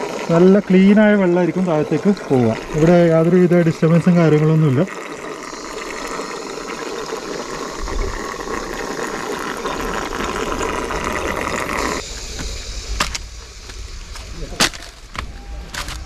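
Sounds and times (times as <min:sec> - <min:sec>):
water trickling down rock: 0:00.0 - 0:12.0.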